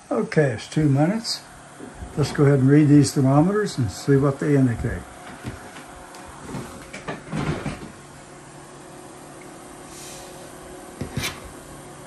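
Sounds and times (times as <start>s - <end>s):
desk fan humming: 0.0s - 12.0s.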